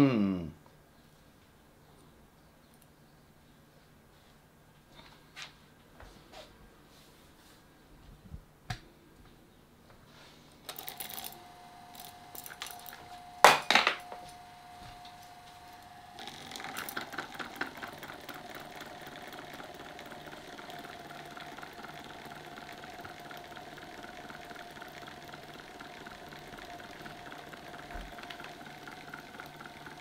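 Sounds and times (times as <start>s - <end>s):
electric fan motor humming: 10.5s - 30.0s
rapid ticking on shaft: 15.7s - 30.0s.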